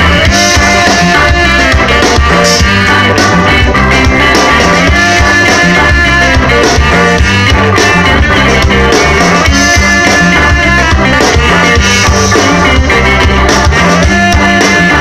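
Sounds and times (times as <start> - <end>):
drums with steady beat: 0.0 - 15.0
electric guitars: 0.0 - 15.0
saxophone: 0.0 - 15.0.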